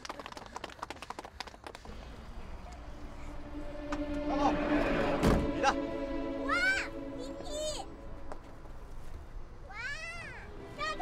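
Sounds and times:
film score sustained chords: 1.9s - 11.0s.

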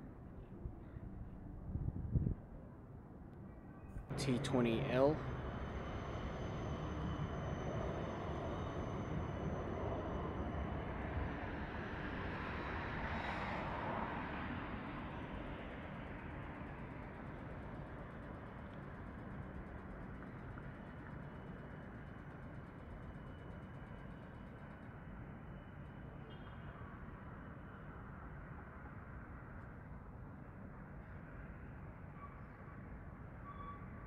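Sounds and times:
city traffic rumble: 4.1s - 21.1s.

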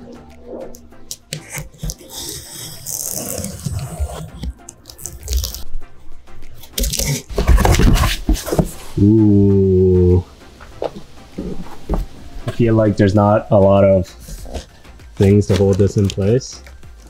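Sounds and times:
blade slitting packing tape: 1.1s - 5.6s, 6.6s - 7.3s
cardboard flaps crackling open: 1.1s - 5.6s, 6.7s - 9.0s, 14.4s - 16.4s.

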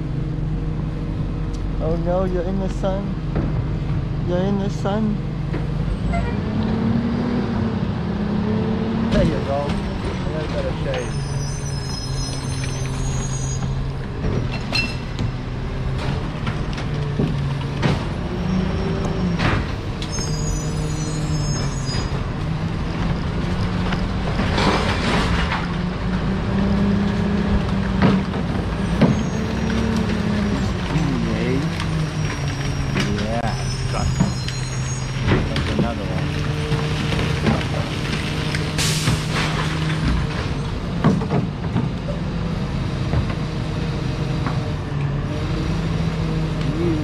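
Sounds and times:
garbage truck running: 0.0s - 47.0s
road noise: 0.0s - 47.0s
faint voice: 46.6s - 47.0s.

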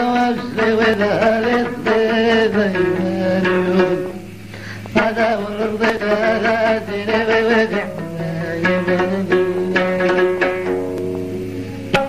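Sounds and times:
chanted folk singing: 0.0s - 12.0s
plucked long-necked lute: 0.0s - 12.0s.

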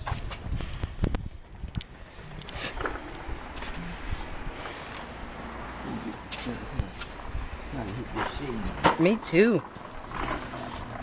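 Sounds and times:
steady low rumble: 0.0s - 8.8s.

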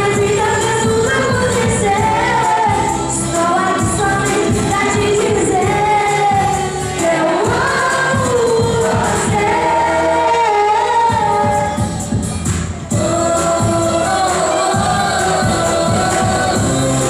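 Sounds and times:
live singing over backing track: 0.0s - 17.0s.

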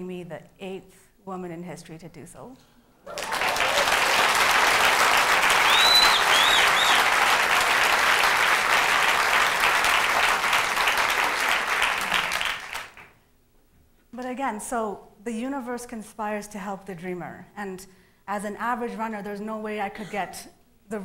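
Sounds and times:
audience applauding: 3.1s - 13.2s
high rising and falling calls: 5.5s - 7.2s.

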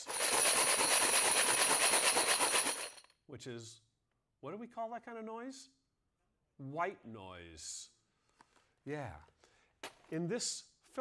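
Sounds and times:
metal bells jangling in plastic box: 0.0s - 3.1s.

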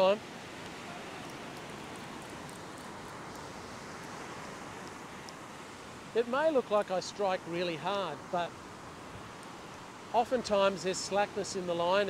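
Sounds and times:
strong wind: 0.0s - 6.3s.

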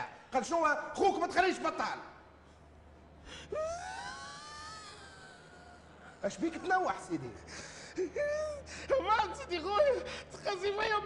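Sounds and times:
man wailing and sobbing: 3.5s - 6.7s, 7.7s - 11.0s.

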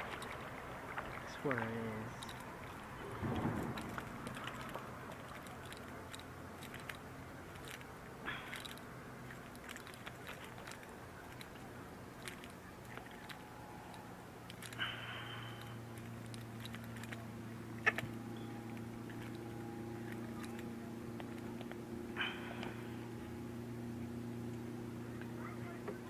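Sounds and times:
fishing tackle clicks and rustles: 0.0s - 23.2s
low steady hum: 0.0s - 26.0s.

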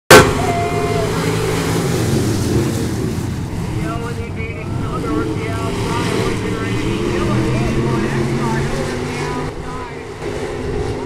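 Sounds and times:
race car engines running hard: 0.1s - 11.0s.

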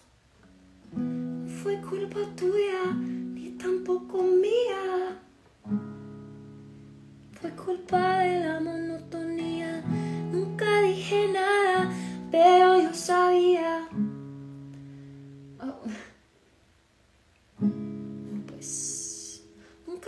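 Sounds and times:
strummed acoustic guitar: 0.4s - 15.6s, 17.6s - 20.0s
woman singing: 1.4s - 5.3s, 7.3s - 14.0s, 18.4s - 20.0s.

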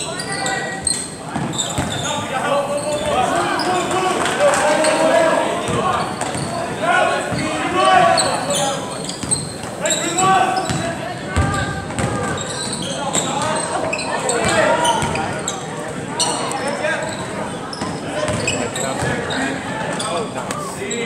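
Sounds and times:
spectators chattering: 0.0s - 21.0s
basketball bouncing on hardwood: 11.4s - 12.2s.

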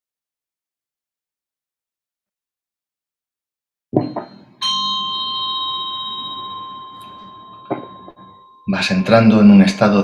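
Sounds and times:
small bell ringing: 4.0s - 9.1s.

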